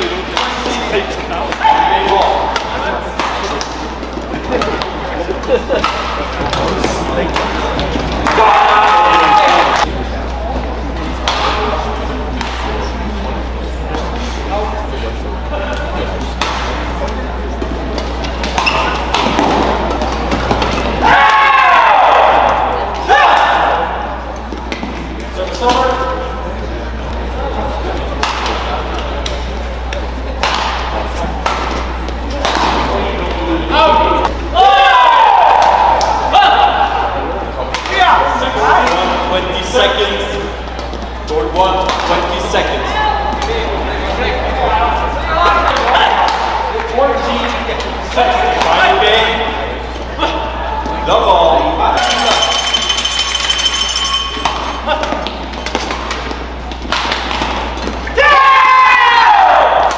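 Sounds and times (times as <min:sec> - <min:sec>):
voices: 0:00.0 - 0:59.9
rackets striking shuttlecock: 0:01.5 - 0:05.0, 0:28.2 - 0:33.3, 0:52.0 - 0:58.1.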